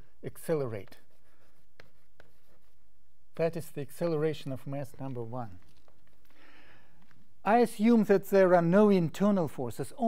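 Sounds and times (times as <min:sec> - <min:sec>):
chalk scratching on blackboard: 0:00.3 - 0:06.3
chalk taps: 0:00.3 - 0:07.5.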